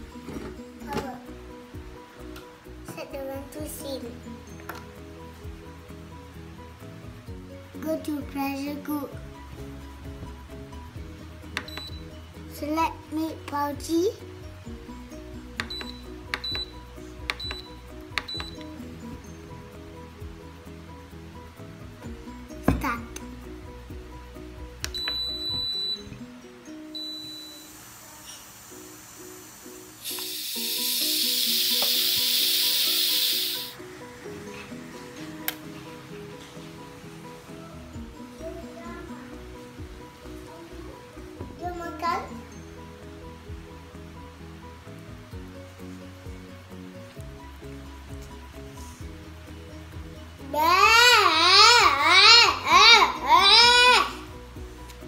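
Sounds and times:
background music: 0:00.0 - 0:55.0
short high electronic beep: 0:27.0 - 0:27.8
steam hissing from valve: 0:27.5 - 0:33.8.

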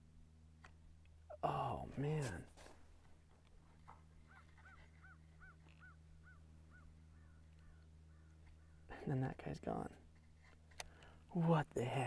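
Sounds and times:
low steady hum: 0:00.0 - 0:12.0
bird calling: 0:03.6 - 0:09.3.

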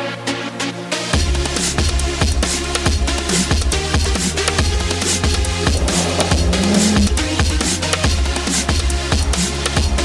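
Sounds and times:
drum and bass music: 0:01.2 - 0:07.9
held rising tone: 0:05.4 - 0:07.4.

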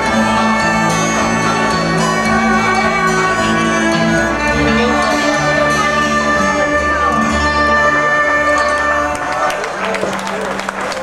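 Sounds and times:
live band playing: 0:00.0 - 0:10.8
violins bowing long notes: 0:00.0 - 0:11.0.

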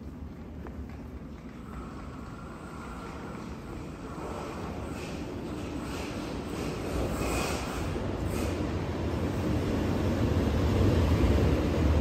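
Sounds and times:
low rumble of train: 0:00.0 - 0:12.0.

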